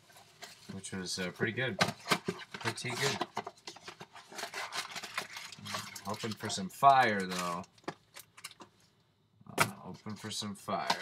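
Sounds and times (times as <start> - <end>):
foil card packs crinkling: 0.1 - 8.8.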